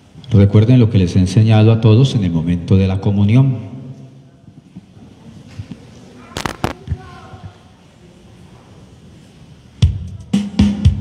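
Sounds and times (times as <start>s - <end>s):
sharp cracks: 6.3s - 7.1s
drum kit playing music: 9.8s - 11.0s.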